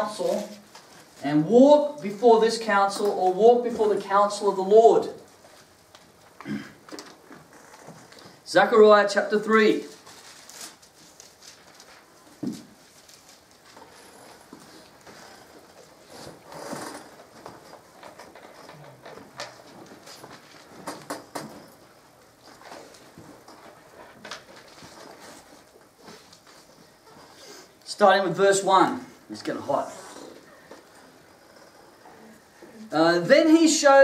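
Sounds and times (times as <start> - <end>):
soft knocks clicks and rustles: 12.4 - 26.8.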